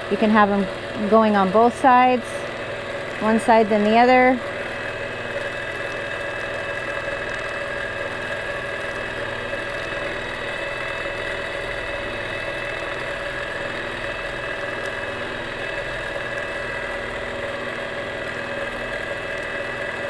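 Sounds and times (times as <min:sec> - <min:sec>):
quilting machine stitching: 0:00.0 - 0:20.0.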